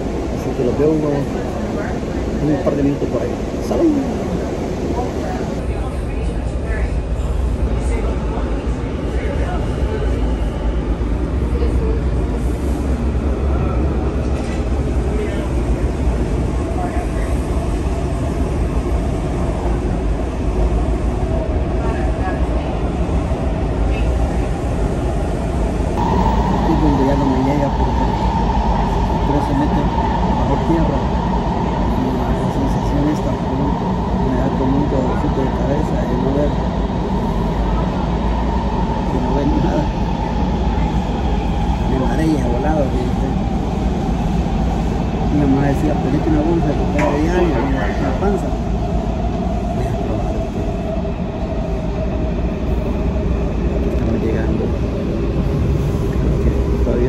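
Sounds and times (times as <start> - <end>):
metro train rumbling: 0.0 - 57.0.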